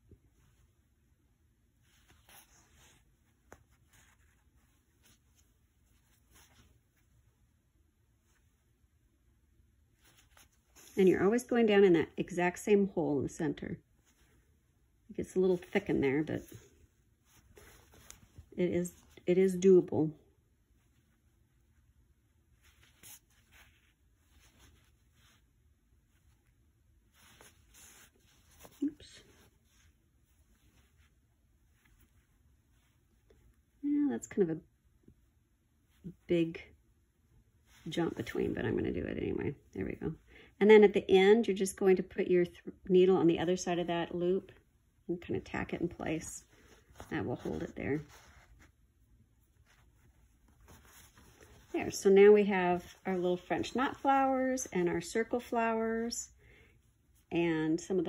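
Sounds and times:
fabric rustling: 0.0 - 12.9, 13.6 - 40.4, 43.4 - 58.0.

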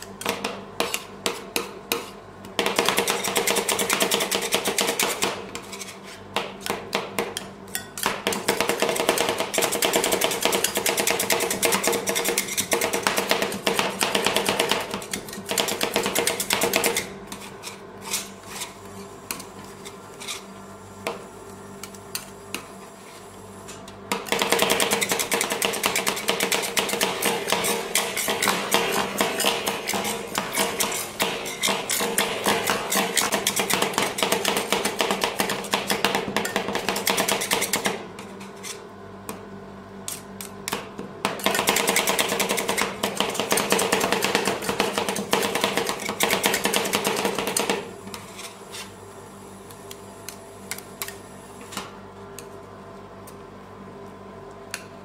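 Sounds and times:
metal spatulas chopping on steel: 0.0 - 17.8, 24.1 - 38.0, 40.7 - 48.5.

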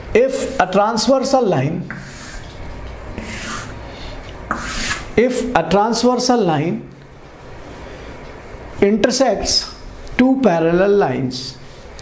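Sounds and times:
chalk scratching on chalkboard: 1.8 - 2.6, 3.2 - 3.8, 4.5 - 5.4.

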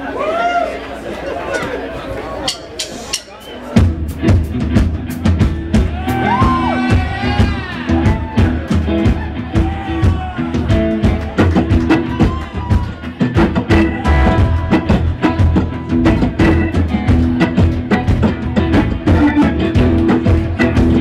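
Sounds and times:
crowd chatter: 0.0 - 21.0
live rock band playing: 2.9 - 21.0
bending guitar lead line: 3.8 - 21.0.

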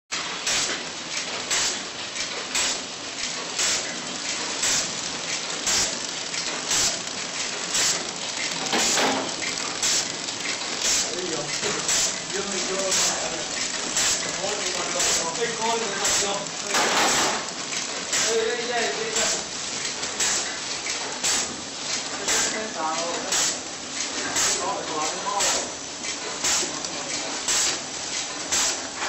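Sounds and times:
sharp machine clack: 0.1 - 29.0
packaging machine clattering: 0.2 - 29.0.

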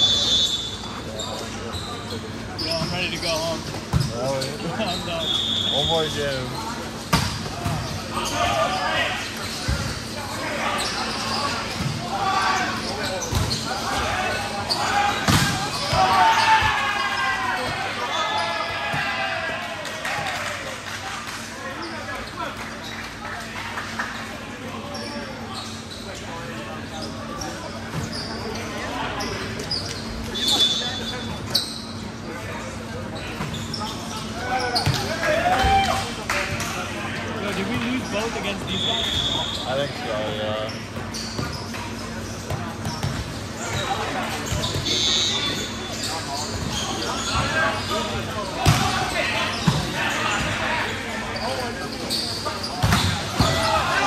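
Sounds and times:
players shouting: 10.3 - 20.8, 34.3 - 36.2, 53.1 - 54.0.

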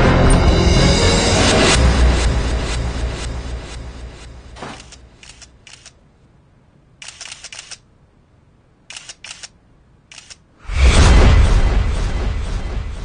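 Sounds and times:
camera shutter clicks: 4.6 - 6.0, 7.0 - 7.8, 8.9 - 10.4
loud low boom: 10.6 - 13.0.

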